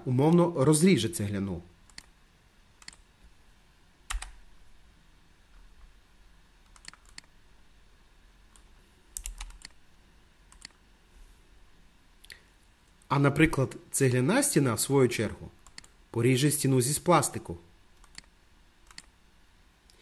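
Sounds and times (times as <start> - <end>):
computer mouse and keyboard clicks: 6.6 - 7.3, 8.5 - 9.8, 10.5 - 10.8, 18.0 - 19.1.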